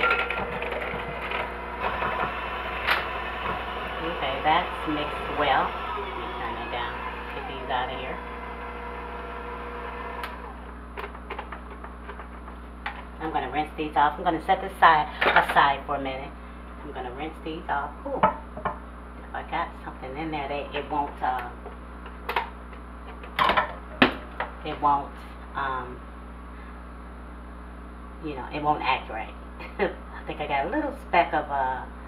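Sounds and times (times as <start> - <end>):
electric hand mixer motor running: 0.0 - 10.7.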